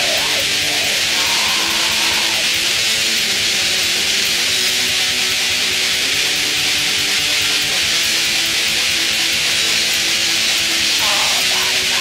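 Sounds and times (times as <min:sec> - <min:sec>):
black metal distorted guitar: 0:00.0 - 0:12.0.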